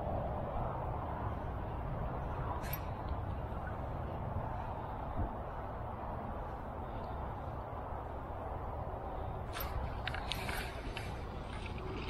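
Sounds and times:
wind on microphone: 0.0 - 12.0
dry reeds crackling underfoot: 9.5 - 12.0.

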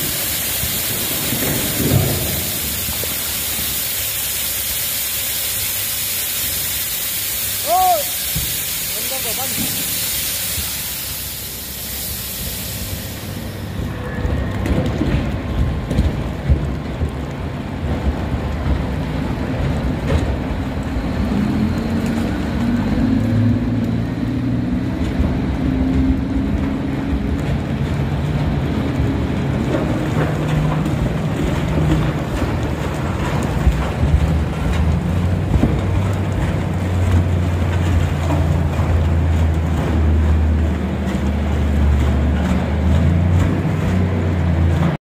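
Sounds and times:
water spray hissing: 0.0 - 14.0
cone crusher rumbling: 24.9 - 45.0.

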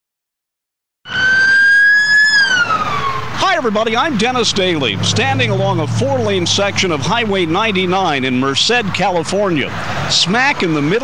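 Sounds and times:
siren wail: 1.0 - 6.7
road noise: 1.1 - 11.0.

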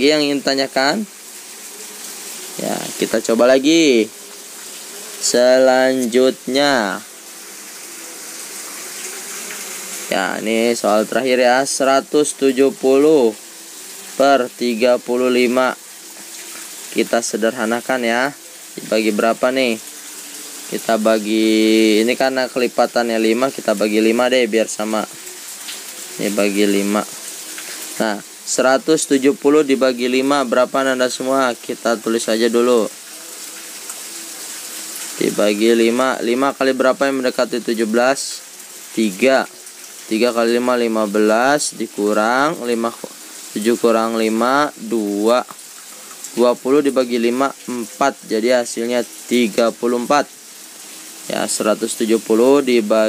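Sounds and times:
background hiss: 0.0 - 53.0.

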